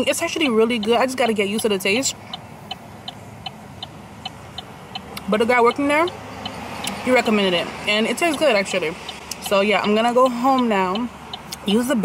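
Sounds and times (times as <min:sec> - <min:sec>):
turn signal ticking: 0:00.0 - 0:12.0.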